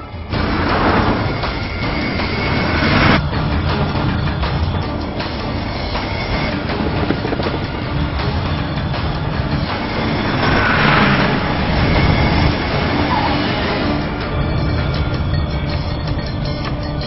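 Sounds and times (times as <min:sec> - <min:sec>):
dense vehicle noise: 0:00.0 - 0:17.0
music: 0:00.0 - 0:17.0.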